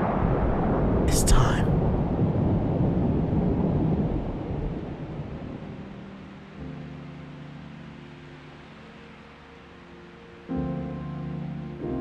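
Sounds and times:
deep rumbling noise: 0.0 - 5.6.

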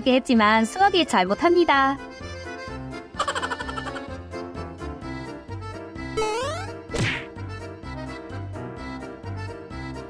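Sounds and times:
light background music: 0.0 - 10.0
cartoon whack with swoosh: 6.2 - 7.4.

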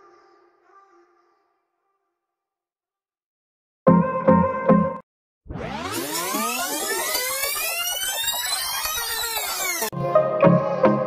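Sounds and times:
electronic sweeping sound effect: 5.5 - 10.0
electronic music with steady beat: 5.8 - 11.0.

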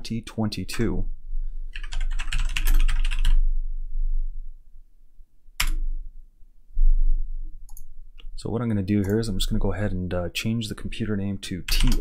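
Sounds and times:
typing on computer keyboard: 1.8 - 3.4, 11.7 - 12.0.

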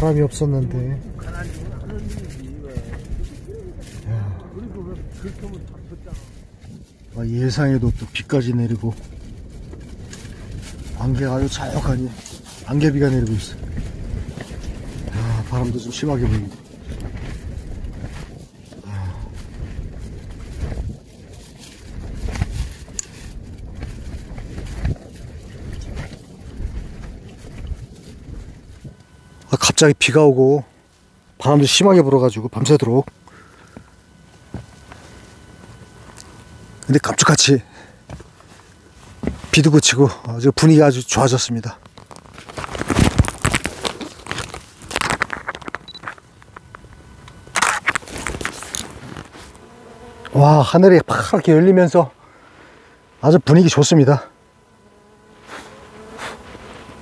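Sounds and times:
wind gusting against tent: 0.0 - 29.4, 41.1 - 46.0
tent fabric rustling and flapping: 5.2 - 29.0, 41.8 - 46.3, 47.6 - 49.6.

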